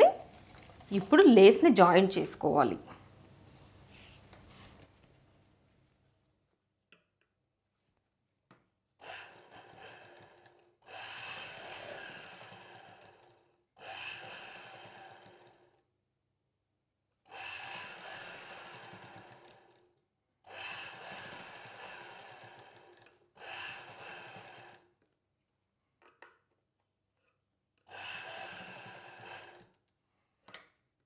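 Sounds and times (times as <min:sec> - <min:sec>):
sewing machine stitching: 0:09.0 - 0:15.8, 0:17.3 - 0:24.9, 0:27.9 - 0:29.8.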